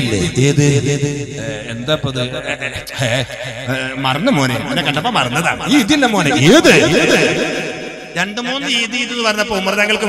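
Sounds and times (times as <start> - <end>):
man talking over a microphone: 0.0 - 10.0.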